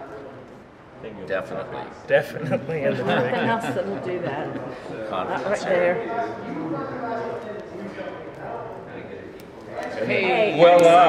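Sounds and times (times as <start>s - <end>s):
faint voices murmuring: 0.0s - 11.0s.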